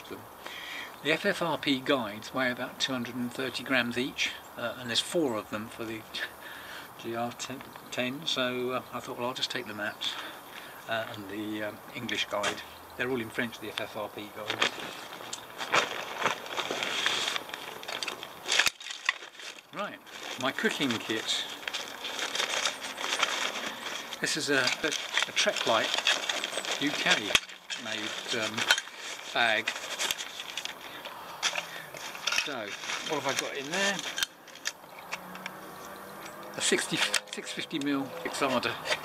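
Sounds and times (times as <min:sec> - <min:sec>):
rustling of backpack fabric: 0:12.1 - 0:34.7.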